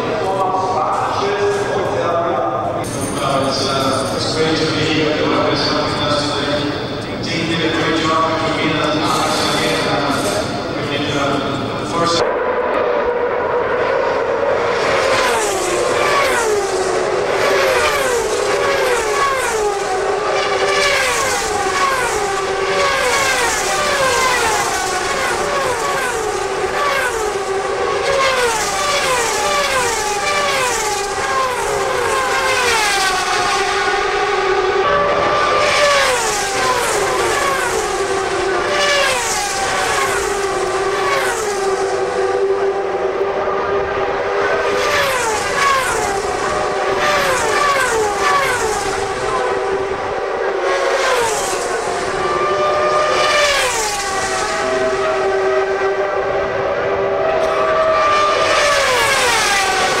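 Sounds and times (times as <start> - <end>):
race cars passing at speed: 0.0 - 60.0
steady engine drone: 0.0 - 60.0.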